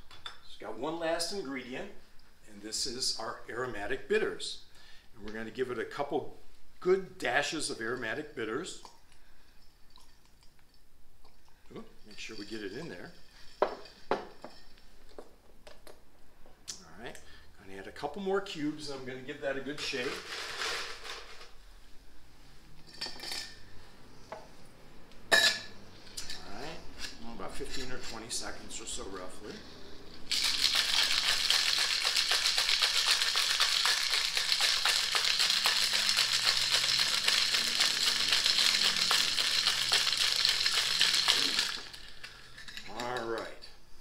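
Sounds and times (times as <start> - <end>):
ice cubes clattering in bucket: 20.0 - 21.5, 30.3 - 43.0.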